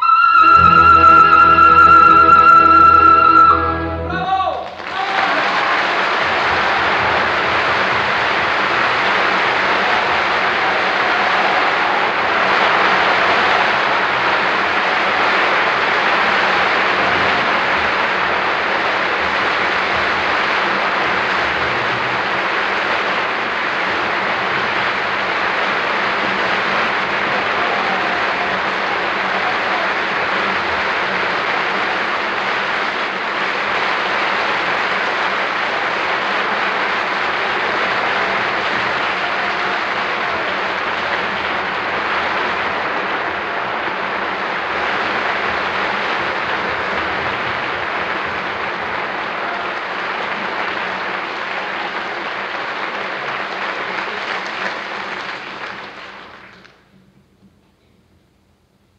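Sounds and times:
audience applauding: 0.0s - 56.9s.

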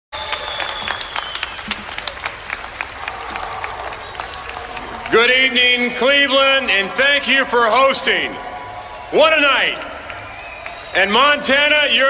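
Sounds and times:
crowd applauding: 0.1s - 12.0s.

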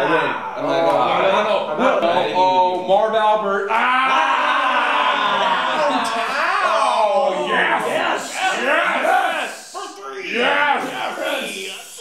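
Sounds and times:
men yelling together: 3.7s - 11.8s.

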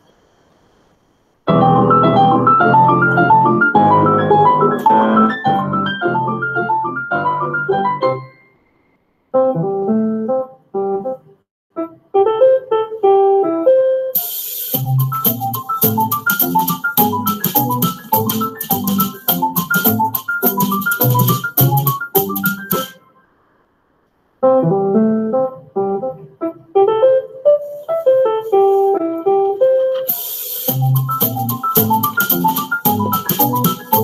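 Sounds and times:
piano music: 1.5s - 8.7s, 9.3s - 23.1s, 24.4s - 34.0s
fast hissing ticking rhythm: 14.2s - 22.9s, 30.1s - 34.0s.

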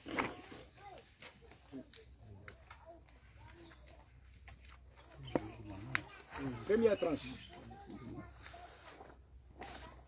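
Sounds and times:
faint voices murmuring: 0.0s - 10.0s.

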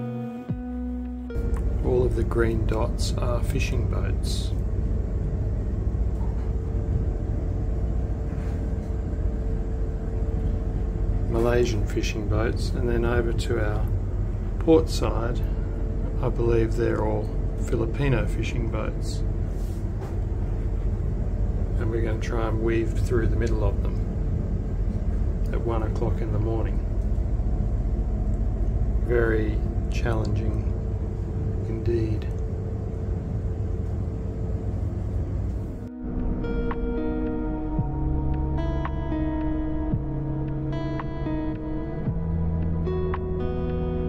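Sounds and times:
faint steady hum: 0.0s - 44.0s
diesel engines rumbling: 1.3s - 43.8s.

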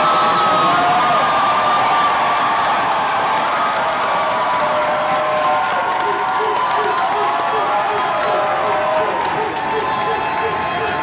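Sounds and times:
crowd cheering and clapping: 0.0s - 11.0s
long held shouts: 4.9s - 11.0s.

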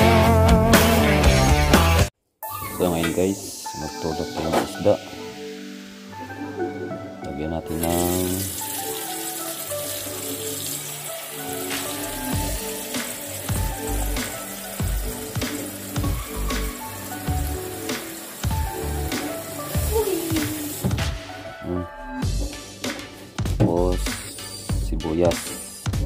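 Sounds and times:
background music with beat: 0.0s - 7.9s, 11.4s - 26.0s
tap water pouring into pot: 7.8s - 21.0s.

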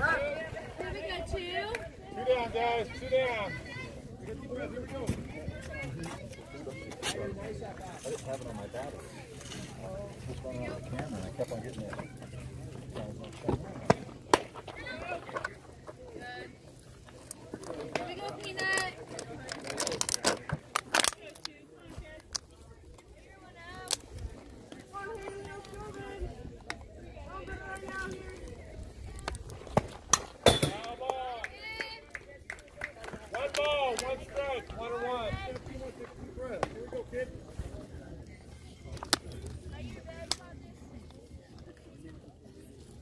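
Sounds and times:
calls and chatter: 0.0s - 43.0s.

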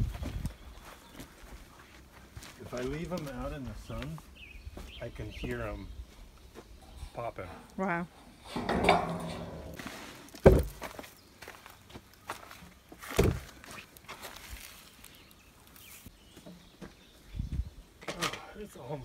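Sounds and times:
footsteps: 8.1s - 17.0s
heavy wooden thuds: 10.4s - 11.0s, 13.1s - 13.5s
dull wooden knock: 10.5s - 10.8s.

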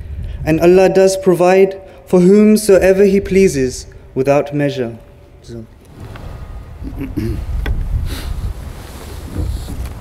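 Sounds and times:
wind buffeting microphone: 0.0s - 1.0s, 5.9s - 10.0s.

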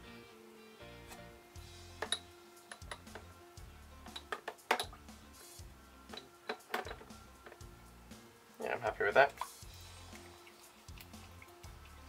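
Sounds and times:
background music with bass: 0.0s - 12.0s
steel part knocking plastic tub: 6.1s - 7.6s.

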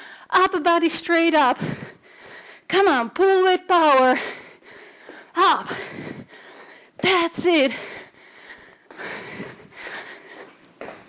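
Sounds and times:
woman breathing hard: 0.0s - 0.3s, 1.6s - 2.7s, 4.2s - 11.0s.

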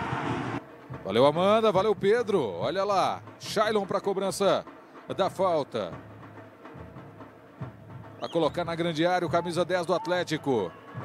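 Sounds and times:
faint stadium ambience: 0.0s - 11.0s.

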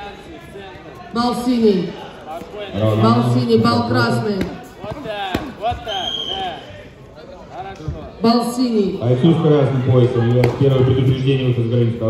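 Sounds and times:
voices in large sports hall: 0.0s - 12.0s.

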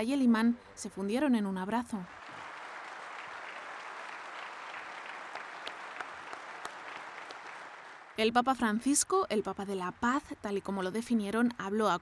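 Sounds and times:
large audience applauding: 2.0s - 8.3s.

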